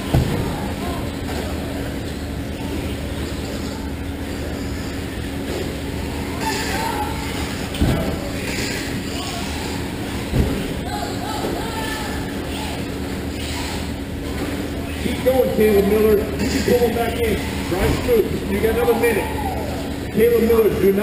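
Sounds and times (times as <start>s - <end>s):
constant low hum: 0.0s - 21.0s.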